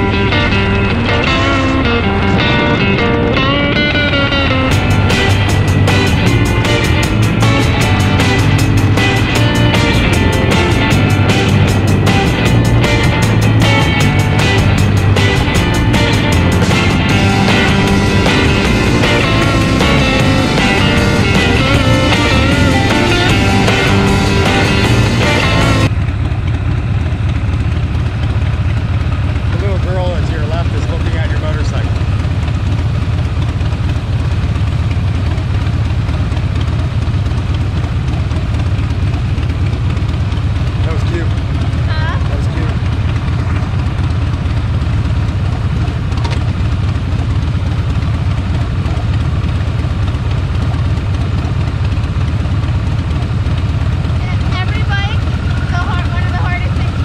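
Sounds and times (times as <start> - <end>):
background music: 0.0 - 25.9, 54.3 - 57.0
motorcycle engines rumbling: 0.0 - 57.0.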